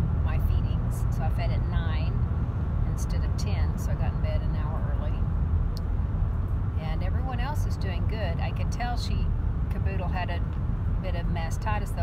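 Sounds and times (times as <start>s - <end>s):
car road and engine rumble: 0.0s - 12.0s
woman talking: 0.2s - 2.2s, 2.9s - 5.2s, 6.8s - 12.0s.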